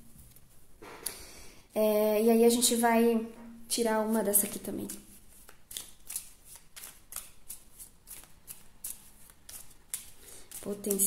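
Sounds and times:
cards being shuffled by hand: 0:04.4 - 0:11.0.

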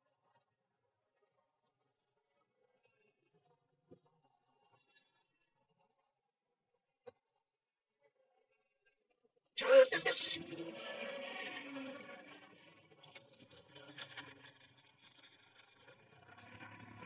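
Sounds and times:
car engine starting and running: 0:09.6 - 0:13.0, 0:16.1 - 0:17.0.

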